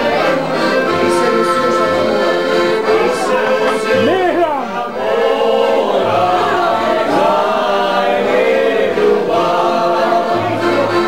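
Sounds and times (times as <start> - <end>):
men singing together: 0.0 - 11.0.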